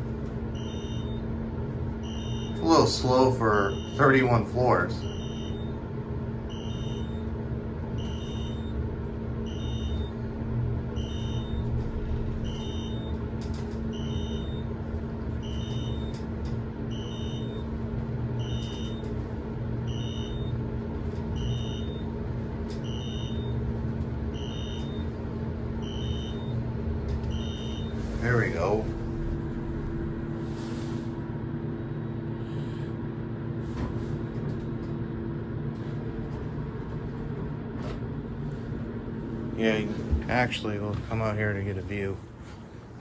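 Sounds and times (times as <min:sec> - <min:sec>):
elevator hum and rumble: 0:00.0 - 0:43.0.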